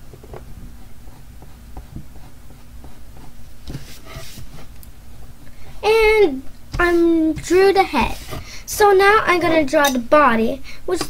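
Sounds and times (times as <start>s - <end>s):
pencil scratching on paper: 0.6s - 4.7s, 6.8s - 8.6s
child's voice: 5.8s - 11.0s.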